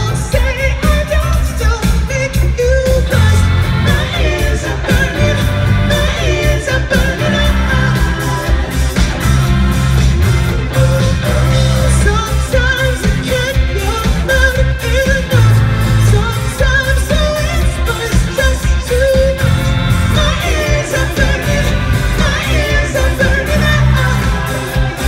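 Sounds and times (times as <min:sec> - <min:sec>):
bass guitar: 0:00.0 - 0:25.0
drum kit: 0:00.0 - 0:25.0
electric guitar: 0:00.0 - 0:25.0
male lead vocal singing: 0:00.0 - 0:25.0.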